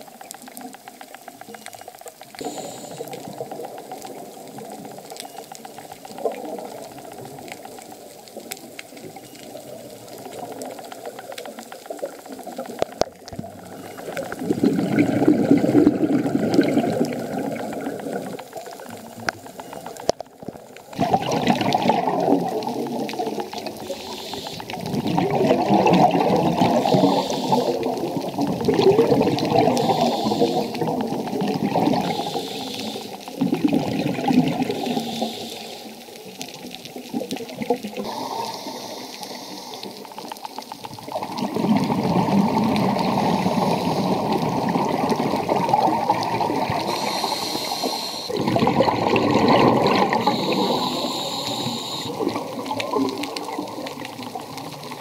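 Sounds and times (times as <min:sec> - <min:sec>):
diver exhaling bubbles: 0:13.2 - 0:18.9, 0:20.9 - 0:35.9, 0:40.9 - 0:55.0
short higher hisses: 0:46.9 - 0:48.4, 0:50.2 - 0:52.1.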